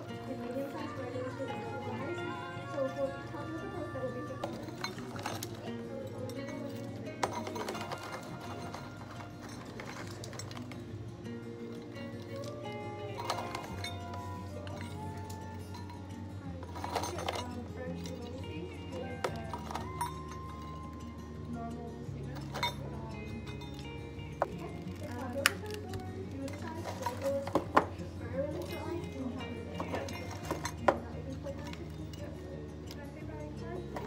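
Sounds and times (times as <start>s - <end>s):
background music: 0.0s - 34.0s
metal scoop clinking plastic: 0.3s - 10.9s, 11.6s - 21.6s, 22.3s - 34.0s.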